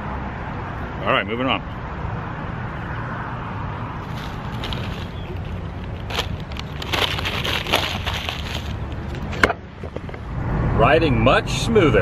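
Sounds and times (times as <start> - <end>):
road traffic rumble: 0.0 - 12.0
crackling clicks and rustles: 4.0 - 10.2.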